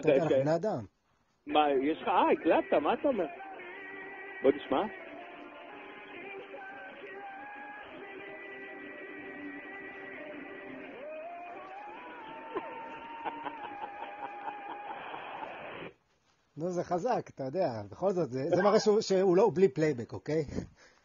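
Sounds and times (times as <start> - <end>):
man singing pop song: 6.1 - 11.7.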